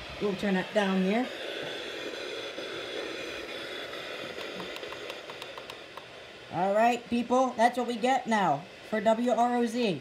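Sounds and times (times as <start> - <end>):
radio static hiss: 0.0 - 10.0.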